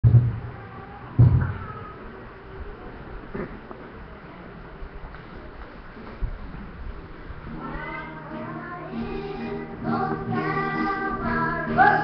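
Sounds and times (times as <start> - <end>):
steady background noise: 0.0 - 12.0
high voice singing: 7.6 - 12.0.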